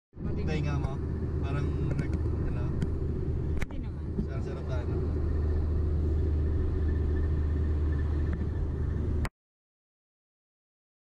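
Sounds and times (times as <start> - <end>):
car driving at highway speed: 0.2 - 9.3.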